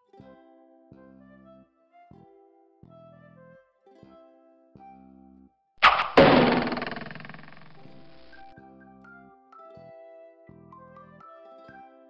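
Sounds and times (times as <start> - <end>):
loud noisy burst: 5.8 - 8.5
sharp hit: 5.8 - 8.5
light background music: 8.3 - 12.0.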